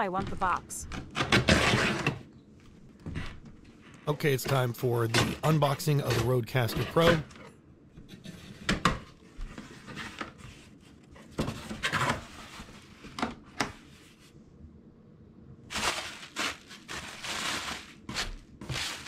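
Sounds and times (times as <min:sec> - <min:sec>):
plastic packing crinkling: 0:15.7 - 0:19.0.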